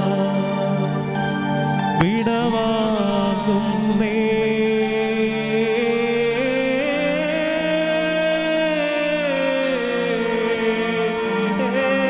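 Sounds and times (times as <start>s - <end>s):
sustained instrumental accompaniment: 0.0s - 12.0s
voice singing long notes: 2.0s - 12.0s.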